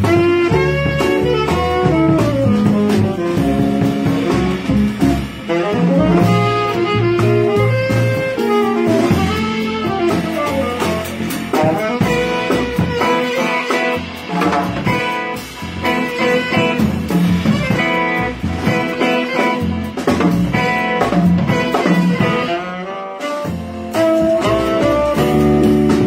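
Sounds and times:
double bass: 0:00.0 - 0:26.0
drum cymbals: 0:00.0 - 0:26.0
electric guitar: 0:00.0 - 0:26.0
jazz band playing: 0:00.0 - 0:26.0
saxophone: 0:00.0 - 0:26.0.

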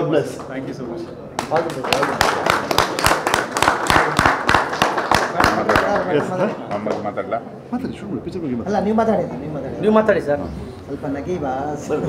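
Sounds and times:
people clapping: 0:00.2 - 0:07.3.

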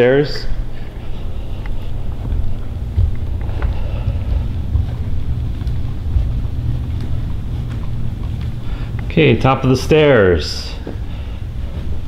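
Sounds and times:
microphone handling rumble: 0:00.5 - 0:12.0.

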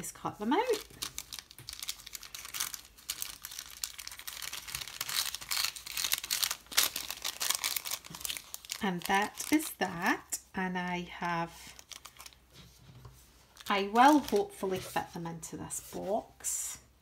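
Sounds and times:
paper envelope crinkling: 0:00.4 - 0:09.8, 0:11.6 - 0:12.5, 0:13.5 - 0:15.0.

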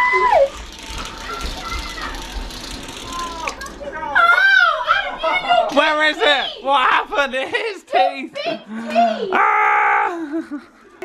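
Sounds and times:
excited voices: 0:01.3 - 0:11.0.

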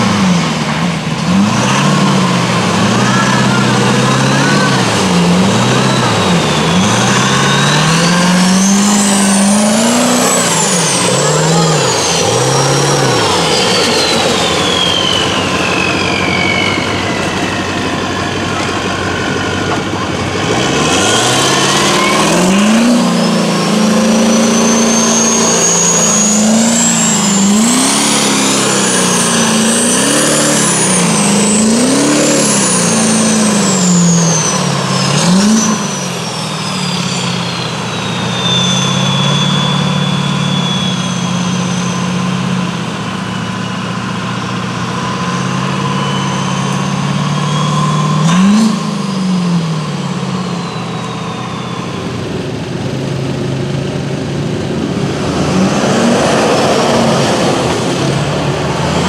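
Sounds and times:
diesel truck engine revving: 0:00.0 - 0:59.0
high turbo whistle: 0:01.3 - 0:52.8, 0:54.6 - 0:59.0.

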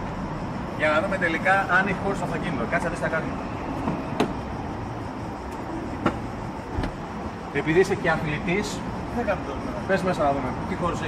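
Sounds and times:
outdoor traffic noise: 0:00.0 - 0:11.0.

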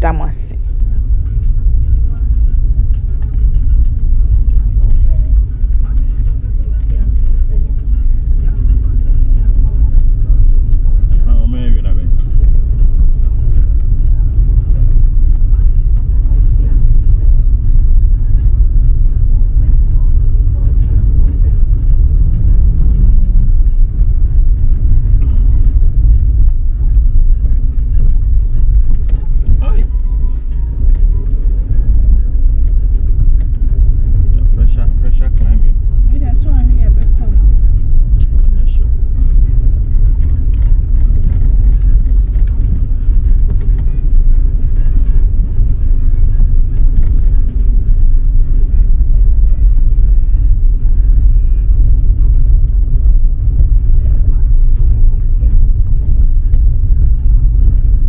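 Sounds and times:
car driving on dirt road: 0:00.0 - 0:58.0.

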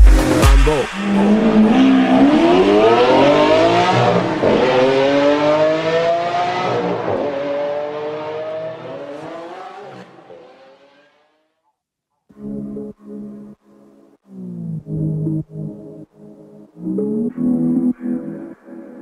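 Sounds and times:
heavy bass beats: 0:00.0 - 0:01.0
sports car engine accelerating: 0:00.0 - 0:11.3.

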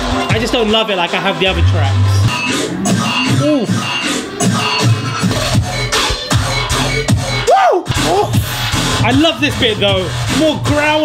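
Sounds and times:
dubstep track with growling bass: 0:00.0 - 0:11.0.

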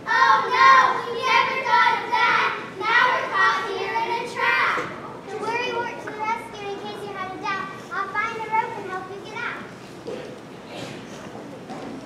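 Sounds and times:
children speaking: 0:00.0 - 0:09.8.

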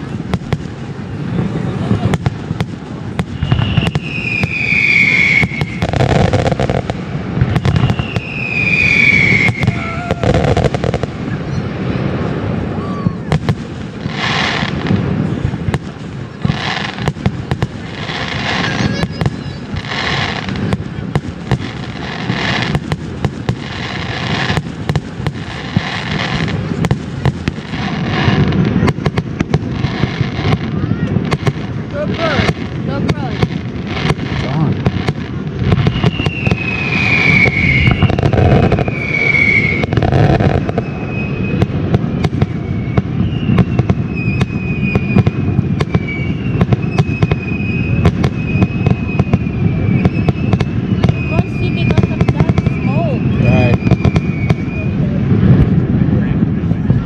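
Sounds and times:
falling firework whistles: 0:00.0 - 0:57.0
fireworks bursting: 0:00.0 - 0:57.0
low rumble: 0:52.1 - 0:57.0.

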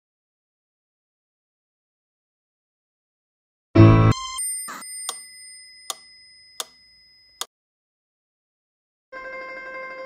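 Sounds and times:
high bell-like ring: 0:04.4 - 0:07.5.

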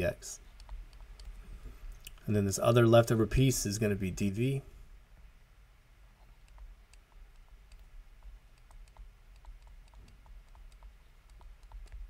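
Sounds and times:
low steady hum: 0:00.0 - 0:12.0
stylus tapping on pen tablet: 0:06.4 - 0:12.0.

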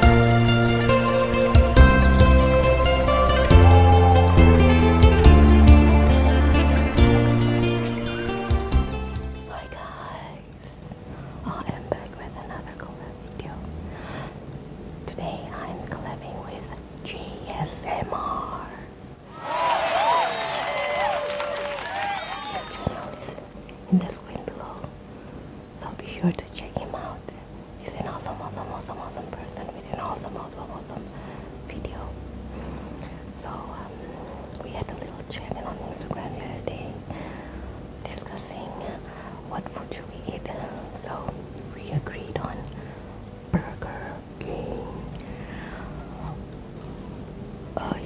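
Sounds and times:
woman whispering: 0:09.5 - 0:10.6, 0:11.4 - 0:13.7, 0:15.1 - 0:18.9, 0:23.8 - 0:24.9, 0:25.8 - 0:31.1, 0:31.7 - 0:32.2, 0:33.4 - 0:37.1, 0:38.0 - 0:42.8, 0:43.5 - 0:45.2, 0:46.0 - 0:46.4, 0:47.8 - 0:48.0.

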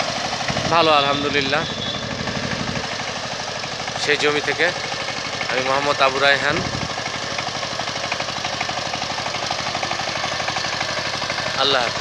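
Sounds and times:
diesel engine chugging: 0:00.0 - 0:12.0.

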